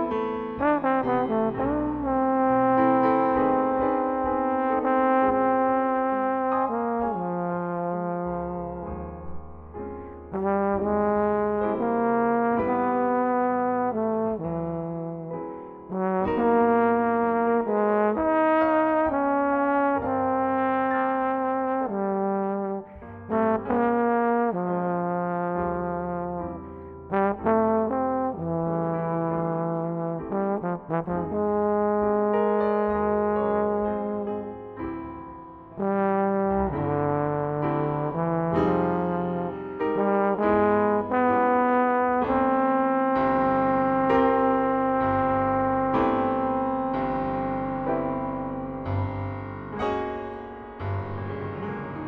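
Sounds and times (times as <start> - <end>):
jazz trombone melody: 0.0 - 9.4, 10.3 - 34.8, 35.7 - 52.0.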